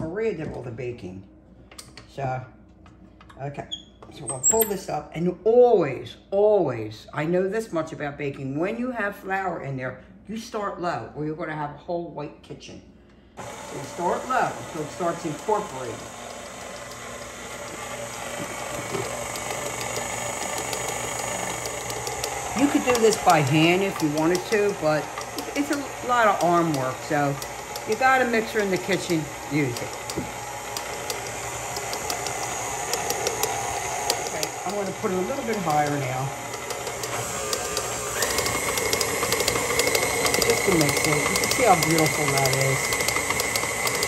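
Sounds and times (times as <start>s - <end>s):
stand mixer motor hum: 13.4s - 44.0s.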